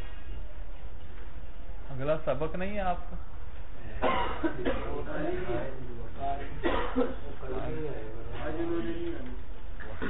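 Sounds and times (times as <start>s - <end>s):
person coughing: 4.0s - 5.0s, 6.6s - 7.2s.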